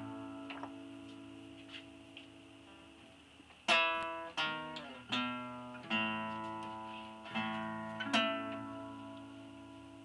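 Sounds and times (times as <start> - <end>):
acoustic guitar strings ringing: 0.0 - 3.0, 3.6 - 10.0
soft plucked guitar note: 0.0 - 3.0, 3.7 - 10.0.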